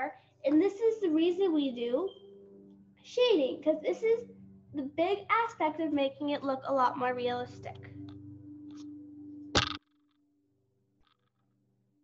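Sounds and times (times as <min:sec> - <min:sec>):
steady low hum: 0:00.1 - 0:09.8.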